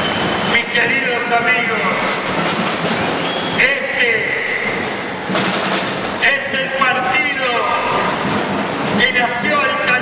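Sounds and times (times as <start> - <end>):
crowd noise in hall: 0.0 - 10.0
man speaking over pa system: 0.4 - 2.4, 3.5 - 5.0, 6.2 - 10.0.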